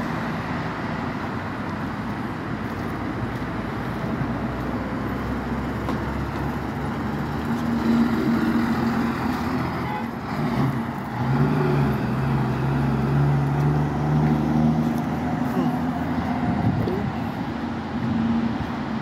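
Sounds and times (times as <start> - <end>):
cars driving past: 0.0 - 19.0.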